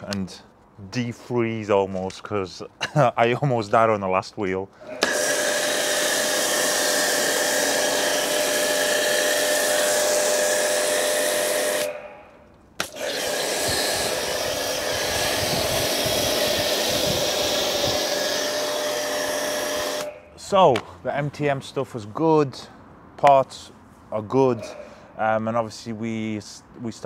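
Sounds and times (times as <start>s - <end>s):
pressure washer spraying foam: 4.9s - 12.1s, 12.8s - 20.2s.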